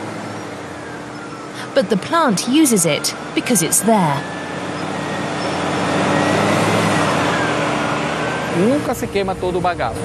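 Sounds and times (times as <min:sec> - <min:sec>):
wheel loader engine: 0:00.0 - 0:10.0.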